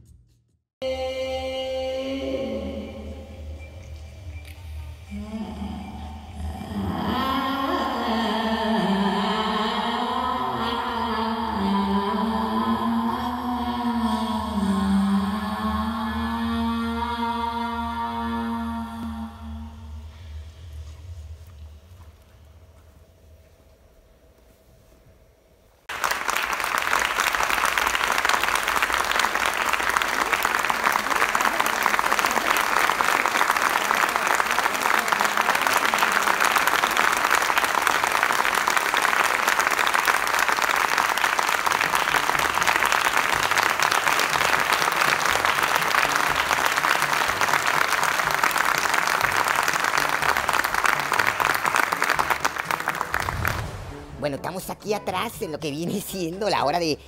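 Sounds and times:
audience applauding: 25.9 - 53.9.

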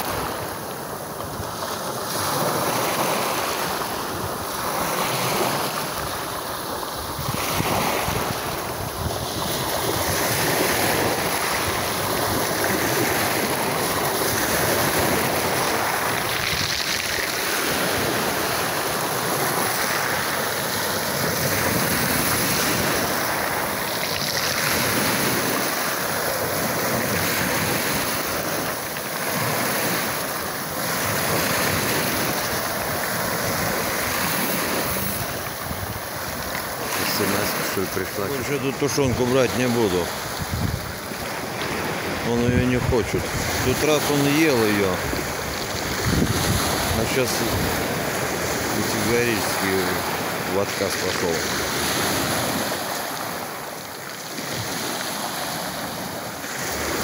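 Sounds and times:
waves washing over pebbles: 0.0 - 57.0.

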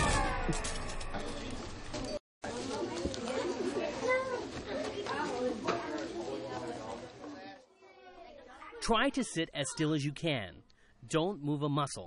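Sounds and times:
high-pitched wordless voices: 7.4 - 10.6.

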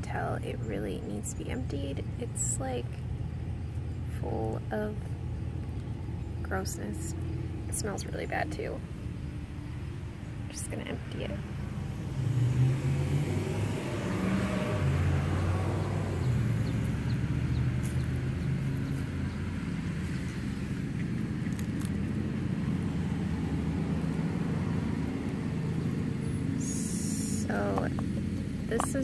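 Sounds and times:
low mechanical hum: 0.0 - 29.0.

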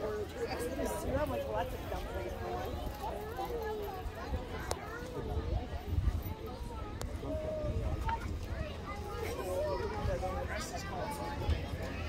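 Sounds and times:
crowd of adults and children talking: 0.0 - 12.0.

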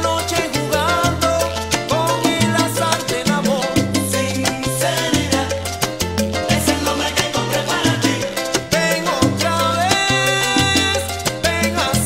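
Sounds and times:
salsa band playing: 0.0 - 12.0.

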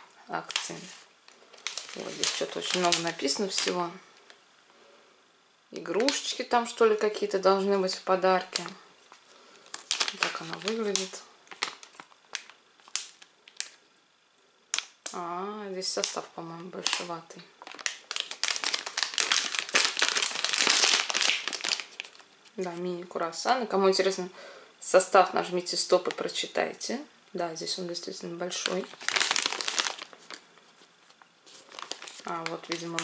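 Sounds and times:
plastic snack bag crinkling: 0.3 - 4.3, 5.9 - 6.4, 7.6 - 13.8, 15.8 - 22.6, 28.5 - 33.0.

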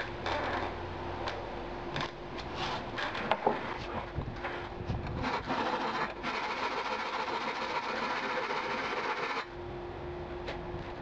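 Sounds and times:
file rasping on steel: 5.2 - 9.5.

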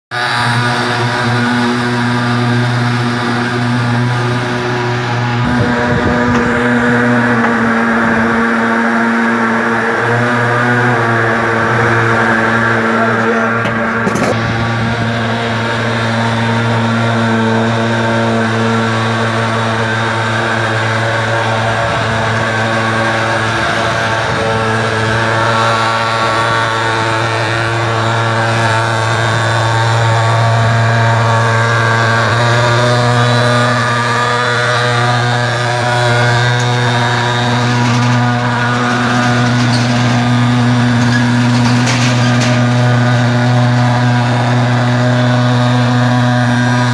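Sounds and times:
fogger engine running: 0.1 - 46.9.

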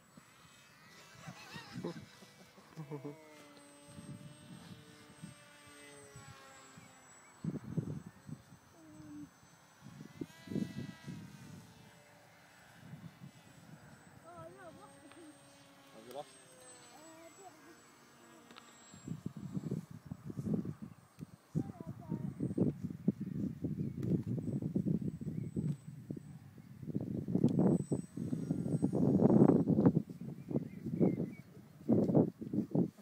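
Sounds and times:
model aircraft motor whine: 0.0 - 33.0.

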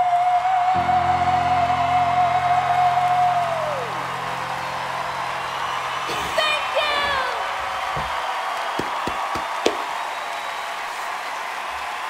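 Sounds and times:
audience applauding: 0.1 - 12.0.

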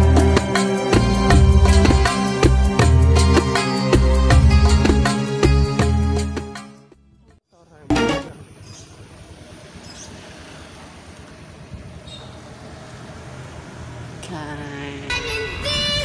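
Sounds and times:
music: 0.0 - 8.4
wind rush while riding: 11.3 - 12.5, 15.0 - 16.0.

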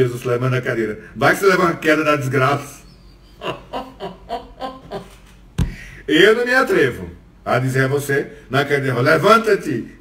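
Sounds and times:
man laughing quietly: 2.8 - 5.9.

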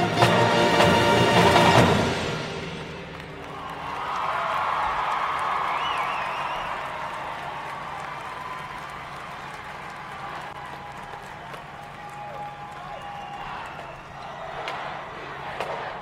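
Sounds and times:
crowd applauding and cheering: 0.0 - 16.0
high whoop: 3.5 - 9.6.

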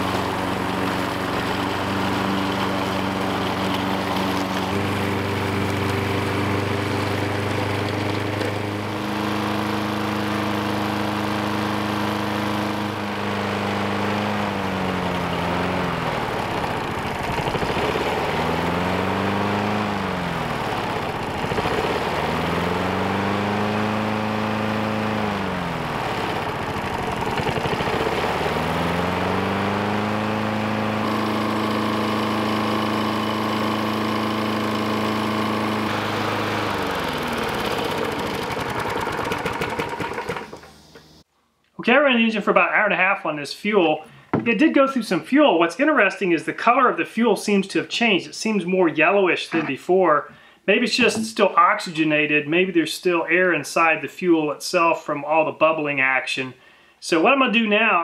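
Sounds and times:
lawn mower engine running: 0.0 - 41.3, 49.5 - 51.8.

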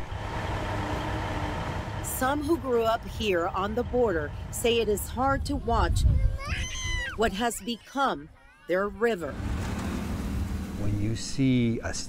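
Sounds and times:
excavator engine rumbling: 0.0 - 5.9.

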